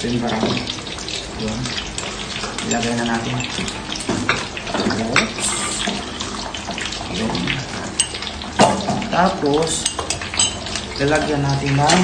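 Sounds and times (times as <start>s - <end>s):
coffee pouring and splashing: 0.0s - 12.0s.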